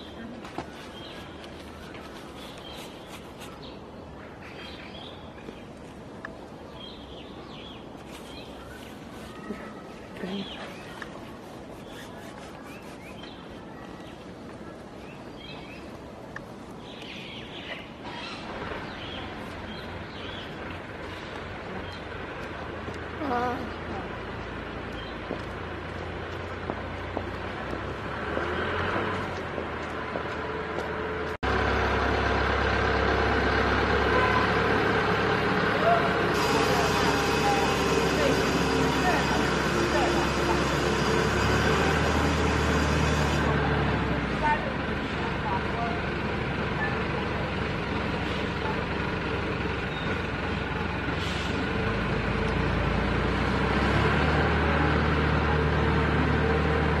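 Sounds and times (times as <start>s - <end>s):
indistinct voices: 34.0s - 49.0s.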